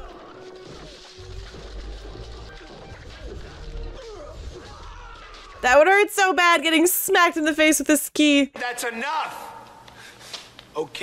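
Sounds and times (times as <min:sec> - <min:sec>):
background music: 0:00.0 - 0:06.0.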